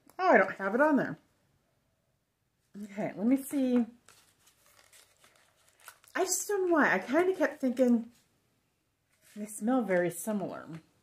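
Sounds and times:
plastic package rustling and clicking: 0:03.7 - 0:06.3.

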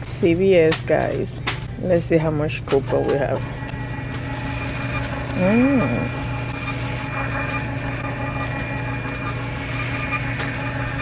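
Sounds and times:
receipt printer humming: 0:03.0 - 0:11.0.

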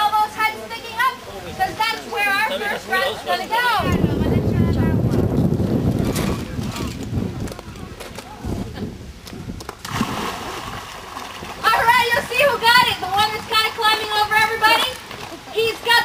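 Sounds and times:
voices: 0:00.0 - 0:05.4, 0:11.6 - 0:16.0
low microphone noise: 0:00.0 - 0:16.0
alligators splashing in water: 0:09.7 - 0:11.8.

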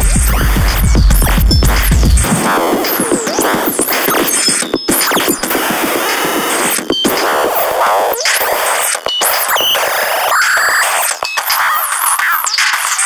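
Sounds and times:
noisy modular synthesizer texture: 0:00.0 - 0:10.3.

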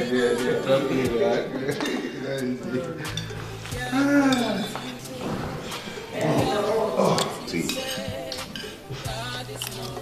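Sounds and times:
low voices: 0:00.0 - 0:10.0
cutlery clinking on plates: 0:01.7 - 0:05.4, 0:06.2 - 0:10.0.

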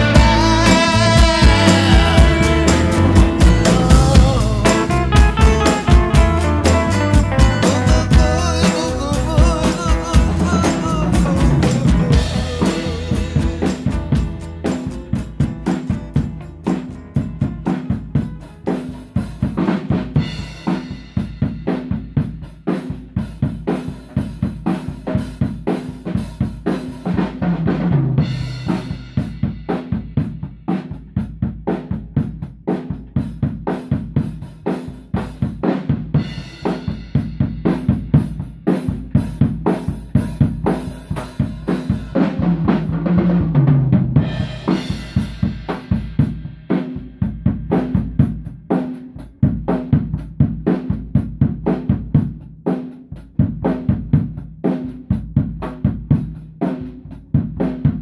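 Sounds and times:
tom fills falling in pitch: 0:00.0 - 0:18.3
drum kit steady beat: 0:00.0 - 0:58.0.

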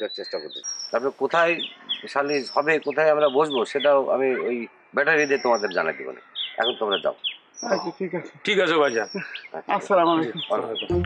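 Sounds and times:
man talking: 0:00.0 - 0:07.2, 0:08.4 - 0:11.0
small birds chirping: 0:00.0 - 0:11.0.

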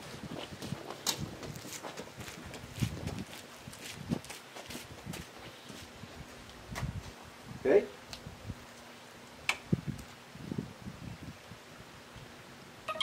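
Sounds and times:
footsteps on gravel: 0:00.0 - 0:07.2.

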